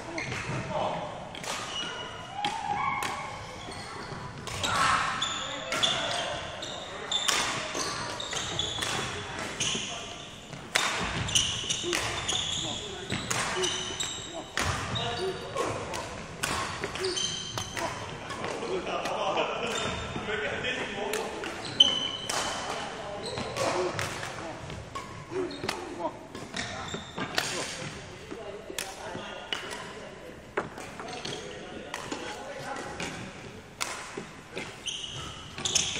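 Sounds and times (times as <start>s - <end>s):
shoe squeaks on wooden court: 1.6s - 2.9s, 3.5s - 15.7s, 16.8s - 18.7s, 21.5s - 27.9s, 30.8s - 31.6s, 34.6s - 35.9s
shuttlecock hits: 10.5s - 12.5s.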